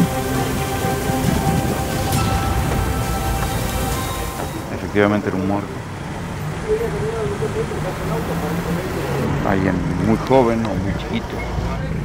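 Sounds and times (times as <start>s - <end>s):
indistinct voices: 0.0s - 12.0s
vehicle idling hum: 0.0s - 12.0s.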